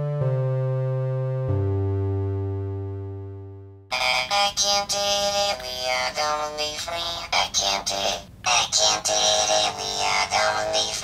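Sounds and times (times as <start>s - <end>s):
held synthesizer chords: 0.0s - 3.9s
robotic vocal synthesizer singing: 3.9s - 11.0s.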